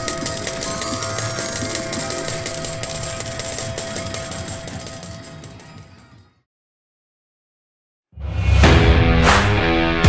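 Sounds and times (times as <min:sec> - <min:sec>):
rapid clicks: 0:00.0 - 0:06.1.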